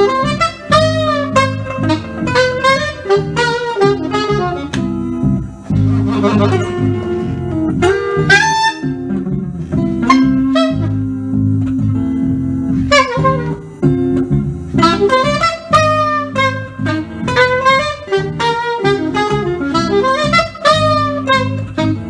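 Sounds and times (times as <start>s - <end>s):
held low guitar notes: 0.0s - 22.0s
saxophone phrases: 0.0s - 22.0s.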